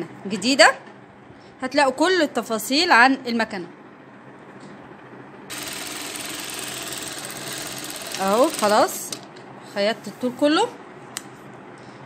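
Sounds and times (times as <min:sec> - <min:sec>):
sewing machine stitching: 0:05.5 - 0:09.2.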